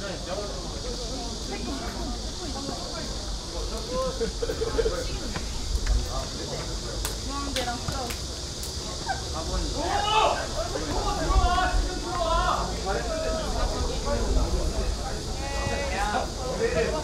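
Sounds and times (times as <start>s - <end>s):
footballers calling and shouting: 0.0s - 17.0s
steady hiss and low rumble: 0.0s - 17.0s.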